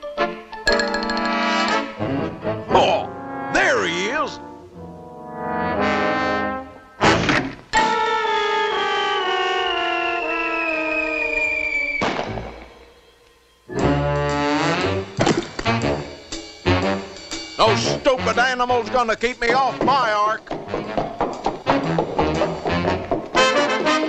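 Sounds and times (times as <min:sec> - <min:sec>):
orchestral cartoon music with brass: 0:01.3 - 0:10.6, 0:13.7 - 0:21.0, 0:21.7 - 0:24.0
falling whistle-like glide: 0:08.6 - 0:13.7.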